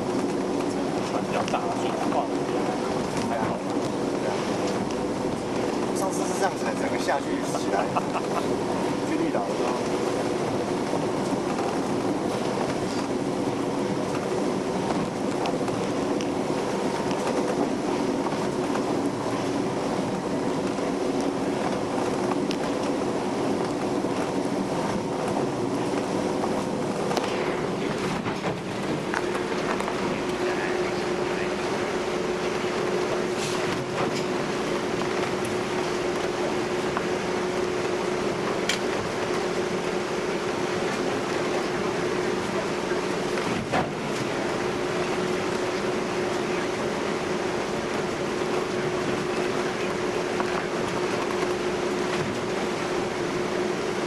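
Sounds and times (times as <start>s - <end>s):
ferry engines droning: 0.0s - 54.0s
water rushing along hull: 0.0s - 54.0s.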